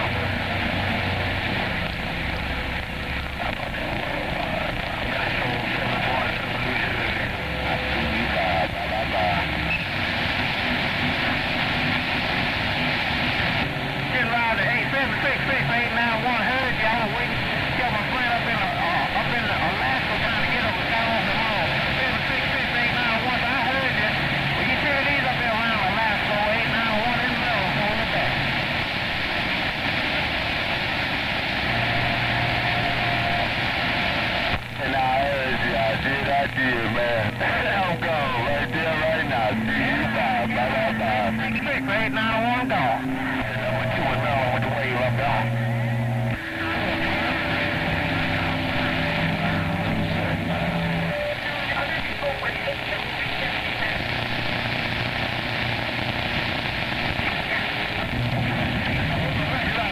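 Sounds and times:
faint garbled radio voices: 0:00.0 - 0:59.9
radio static hiss: 0:00.0 - 0:59.9.

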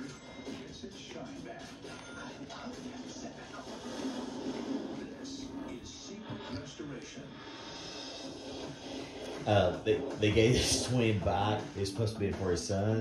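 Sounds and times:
indistinct television voices: 0:00.0 - 0:13.0
television background music: 0:00.0 - 0:13.0.

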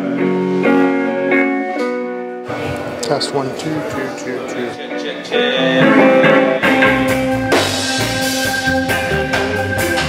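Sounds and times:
bass guitar: 0:00.0 - 0:03.0, 0:04.4 - 0:10.0
drums: 0:00.0 - 0:03.0, 0:05.6 - 0:10.0
guitar chords: 0:00.0 - 0:10.0
keyboard chords: 0:00.0 - 0:10.0.

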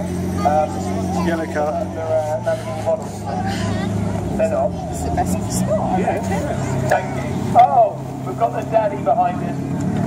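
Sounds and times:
voices: 0:00.0 - 0:09.8
car engine running low: 0:00.0 - 0:10.0.

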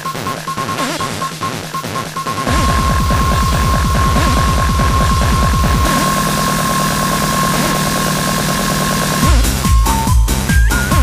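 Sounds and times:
heavy kick drum: 0:00.1 - 0:11.0
steady high synth tone: 0:02.3 - 0:10.9
buzzing bass: 0:02.4 - 0:11.0.

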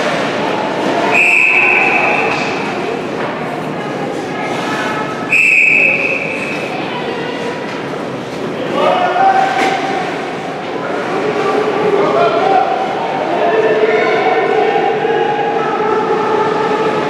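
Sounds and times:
arena crowd noise: 0:00.0 - 0:17.0
spectators calling out: 0:00.8 - 0:03.6, 0:04.4 - 0:07.5
referee's whistle blast: 0:01.1 - 0:02.4, 0:05.3 - 0:06.6.

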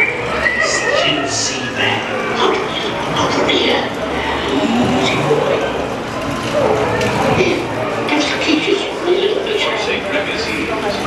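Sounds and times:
recorded voices talking over each other: 0:00.5 - 0:11.0.

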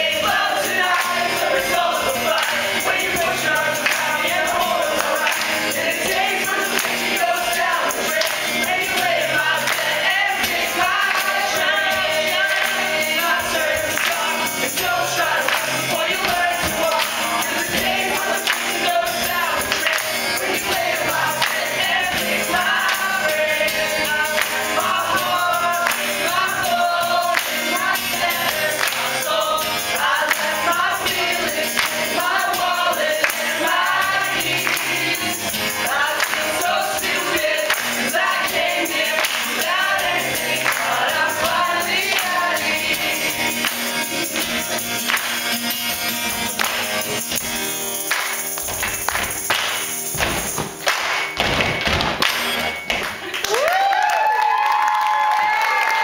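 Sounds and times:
group of voices singing: 0:00.0 - 0:44.8
strummed acoustic guitars: 0:00.0 - 0:53.3.

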